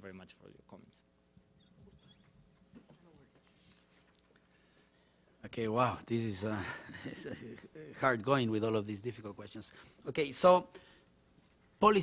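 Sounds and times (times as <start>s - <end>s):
faint high squeaks: 1.5s - 2.6s.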